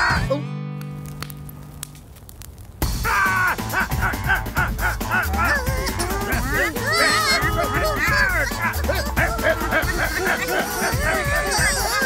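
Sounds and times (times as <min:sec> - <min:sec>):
background music: 0:00.0 - 0:01.9, 0:02.8 - 0:12.0
cartoon character panicked yelling: 0:05.2 - 0:12.0.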